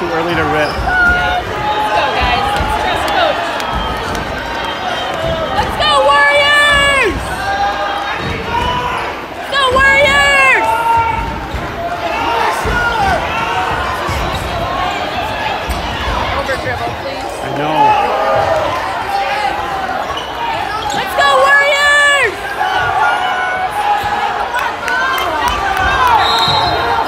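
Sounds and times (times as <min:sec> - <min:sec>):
crowd voices and shouts: 0:00.0 - 0:27.0.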